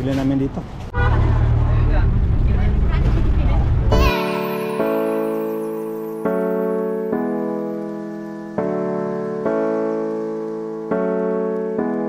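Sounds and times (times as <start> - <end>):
vehicle engine and road rumble: 0.0 - 4.0.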